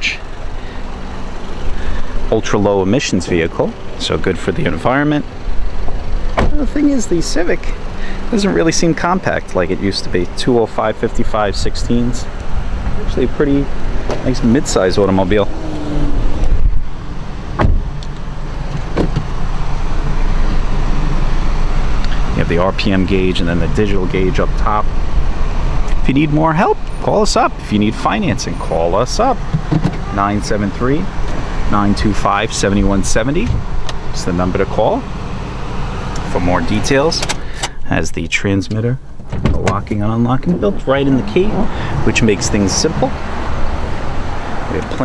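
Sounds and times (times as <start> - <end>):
car engine idling: 0.0 - 45.0
low background rumble: 0.0 - 45.0
thump: 6.4 - 6.6, 17.6 - 17.9.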